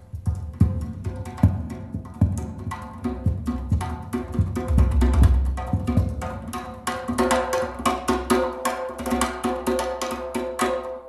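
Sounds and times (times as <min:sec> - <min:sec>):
busy percussion: 0:00.0 - 0:11.0.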